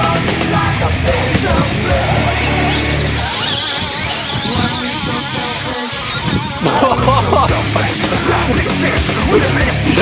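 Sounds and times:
heavy rock music: 0.0s - 10.0s
high wavering guitar lines: 0.0s - 10.0s.

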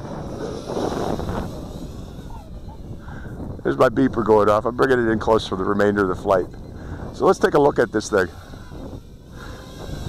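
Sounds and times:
quadcopter motors whining: 0.0s - 10.0s
wind on microphone: 0.0s - 10.0s.

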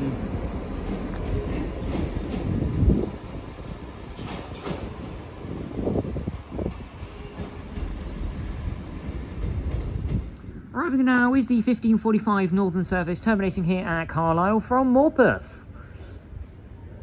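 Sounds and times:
train engine rumble: 0.0s - 17.0s.

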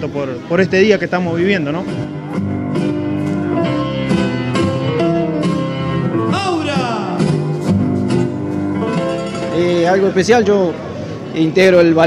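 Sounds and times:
plucked guitar folk music: 1.2s - 11.3s.

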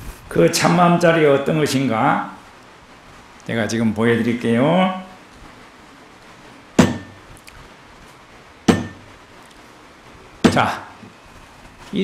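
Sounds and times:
sharp knocks with short ring: 6.8s - 7.2s, 8.7s - 9.1s.

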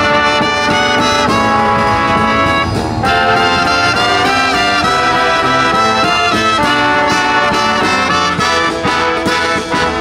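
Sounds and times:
drum beat: 0.0s - 9.5s
brass and sax chords: 0.0s - 10.0s.

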